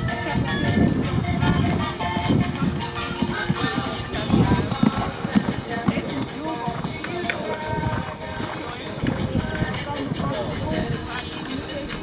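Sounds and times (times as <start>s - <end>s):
horse hoofbeats on sand: 0.0s - 12.0s
indistinct voices: 0.0s - 12.0s
music: 0.0s - 12.0s.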